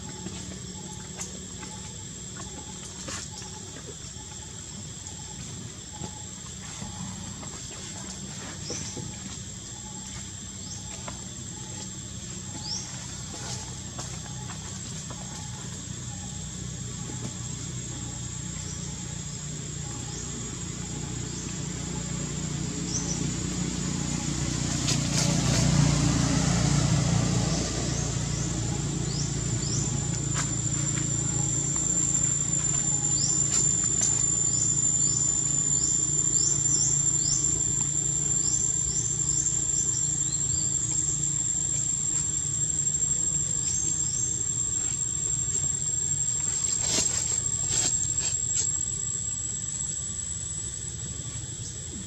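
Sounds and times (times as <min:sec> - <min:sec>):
insect drone: 0:00.0 - 0:52.0.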